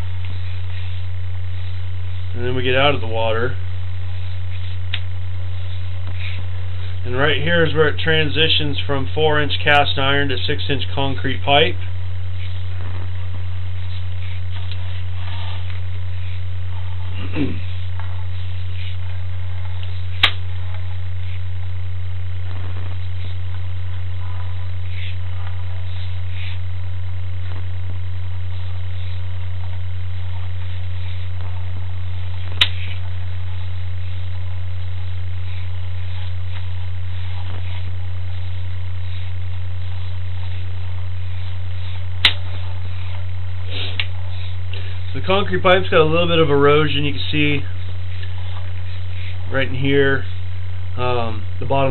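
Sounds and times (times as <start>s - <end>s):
loud electrical hum: 0.0s - 51.9s.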